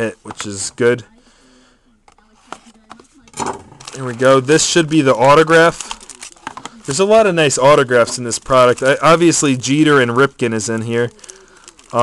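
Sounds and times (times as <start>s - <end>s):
foil packs crinkling: 2.7s - 12.0s.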